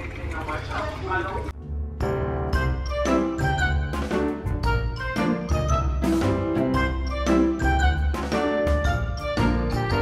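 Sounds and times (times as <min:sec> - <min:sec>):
music: 0:01.6 - 0:10.0.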